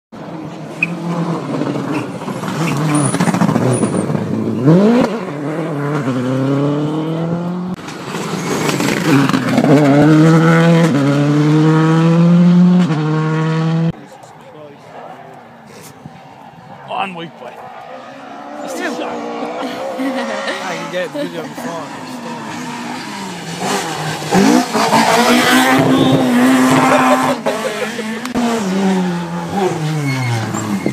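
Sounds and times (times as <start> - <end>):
rally car engines at full throttle: 0.1 - 30.9.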